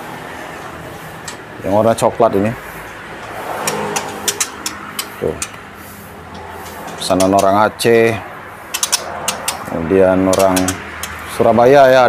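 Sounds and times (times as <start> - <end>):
sharp high clicks: 3.2 - 5.6, 8.7 - 9.7, 10.3 - 11.3.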